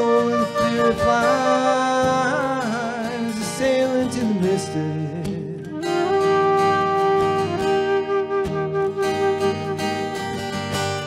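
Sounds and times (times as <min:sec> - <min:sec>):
flute holding long note: 0:00.0 - 0:02.6, 0:05.7 - 0:10.3
strummed acoustic guitar: 0:00.0 - 0:11.0.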